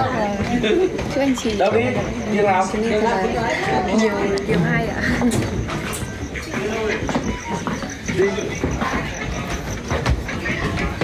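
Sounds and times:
people talking indistinctly: 0.0 - 11.0
footsteps on hard floor: 5.0 - 11.0.

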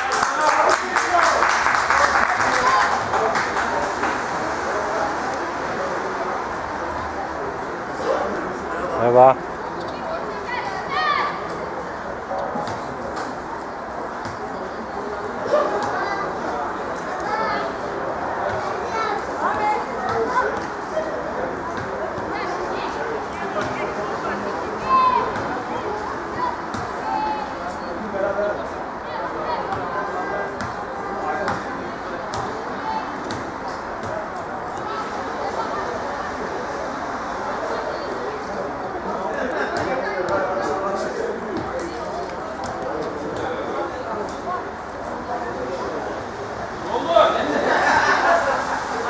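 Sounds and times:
hubbub of overlapping voices: 0.0 - 49.0.

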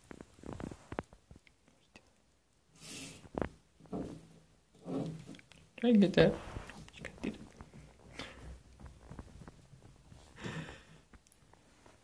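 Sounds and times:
person speaking softly: 5.8 - 7.6.

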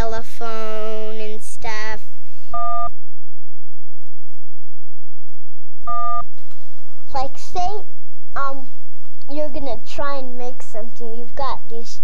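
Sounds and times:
electronic chord beeps: 5.9 - 6.2.

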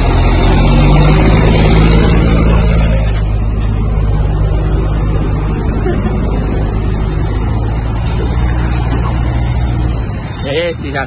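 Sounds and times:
diesel truck engine droning: 0.0 - 11.0.

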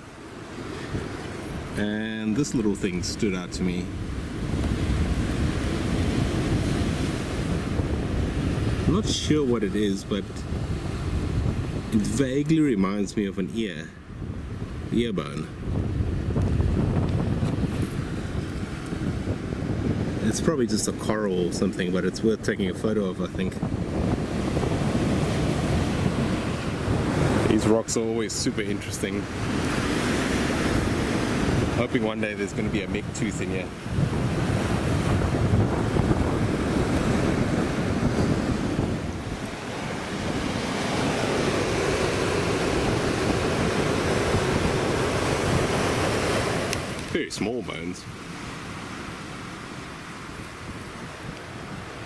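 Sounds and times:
surf breaking on shore: 0.0 - 52.0
wind buffeting microphone: 0.0 - 52.0.

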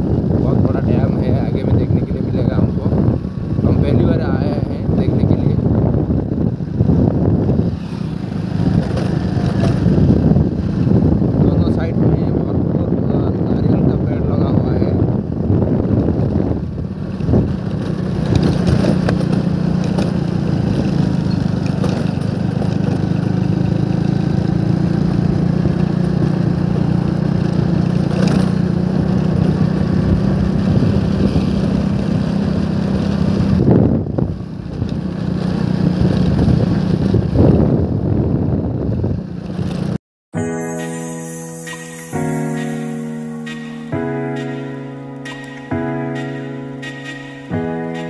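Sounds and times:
vehicle engine cruising: 0.0 - 14.2, 14.8 - 40.6
road and wind noise: 0.0 - 48.0.

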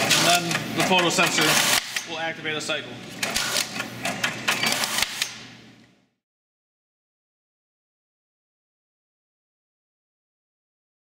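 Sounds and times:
sharp machine click: 0.0 - 2.1, 3.2 - 5.4
banding machine mechanism: 0.0 - 2.2, 3.0 - 5.5.

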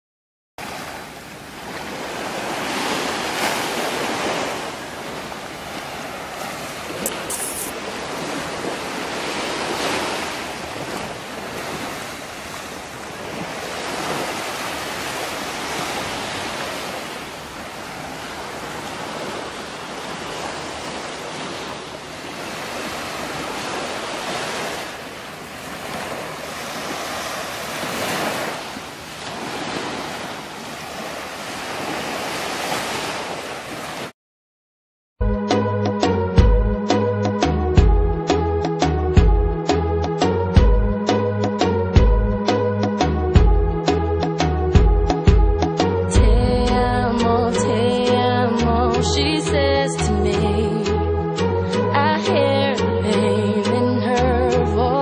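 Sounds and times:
small waves breaking on sand: 0.6 - 34.1.

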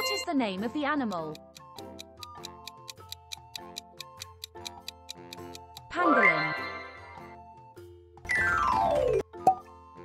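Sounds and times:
soft background music: 0.0 - 10.0
clock ticking quickly: 1.0 - 5.9.

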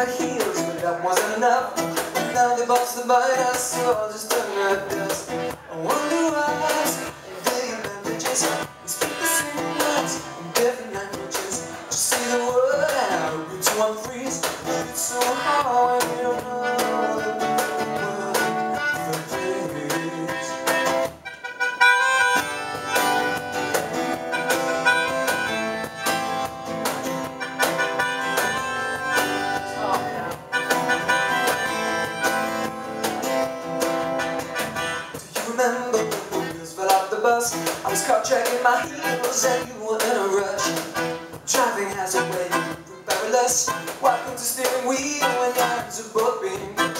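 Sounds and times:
strummed acoustic guitar: 0.0 - 46.9
reedy melodica notes: 8.4 - 12.0, 14.6 - 35.3, 37.9 - 46.9.

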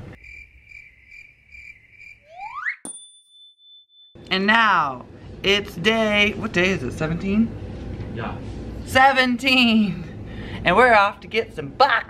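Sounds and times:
crickets chirping: 0.0 - 2.6
rising whistle: 2.1 - 2.8
high ringing ding: 2.8 - 4.2.

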